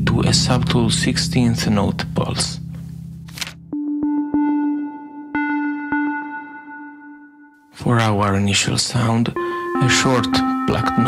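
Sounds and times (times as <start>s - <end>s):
synthesizer note with delay: 3.7s - 7.7s, 9.4s - 11.0s.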